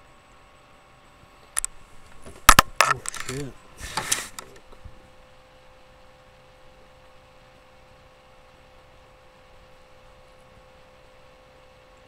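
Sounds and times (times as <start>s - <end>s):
rustling: 1.6s - 5.0s
camera handling knocks: 2.1s - 3.3s
man saying yeah: 2.9s - 3.6s.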